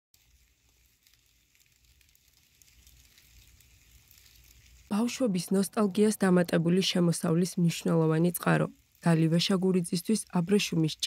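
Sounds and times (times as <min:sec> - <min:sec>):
silkworms chewing leaves: 0:00.2 - 0:10.7.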